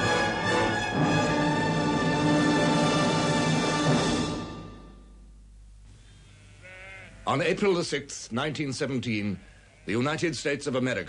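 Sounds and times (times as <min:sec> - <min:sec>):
low steady hum: 0:04.5 - 0:09.7
faint sheep bleat: 0:06.2 - 0:07.5, 0:09.3 - 0:10.2.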